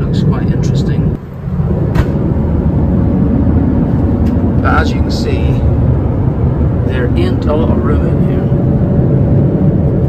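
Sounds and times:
aircraft cabin rumble: 0:00.0 - 0:10.0.

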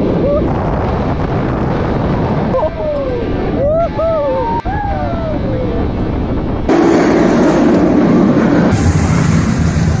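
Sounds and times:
roller coaster rushing on track: 0:00.0 - 0:10.0.

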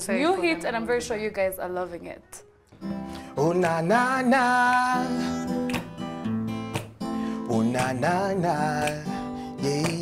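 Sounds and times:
acoustic guitar strumming: 0:02.7 - 0:10.0.

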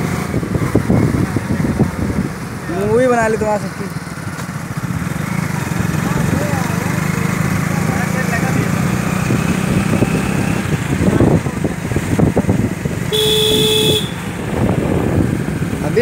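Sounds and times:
motorcycle engine running: 0:00.0 - 0:16.0
horn honking: 0:13.1 - 0:14.3.

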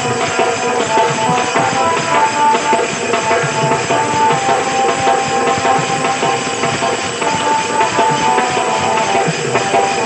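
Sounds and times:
busy steady percussion: 0:00.0 - 0:10.0
held melody line: 0:00.0 - 0:10.0.

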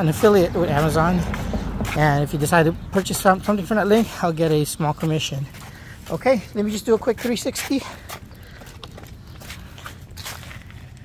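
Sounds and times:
footsteps on dry leaves: 0:00.0 - 0:11.0.

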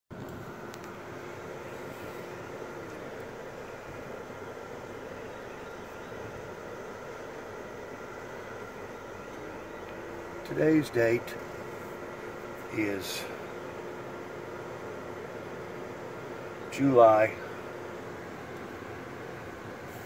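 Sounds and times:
car engine hum: 0:00.1 - 0:20.0
ventilation fan blowing: 0:00.1 - 0:20.0.

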